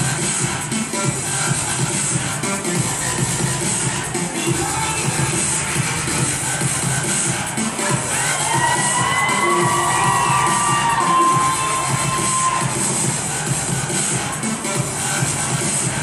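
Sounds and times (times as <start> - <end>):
upbeat dance music: 0.0 - 16.0
audience cheering: 8.0 - 13.0
long high-pitched shout: 8.1 - 12.8.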